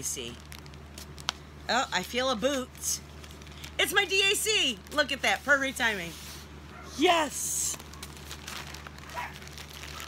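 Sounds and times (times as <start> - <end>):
plastic bag crinkling: 0.0 - 6.1, 7.4 - 10.0.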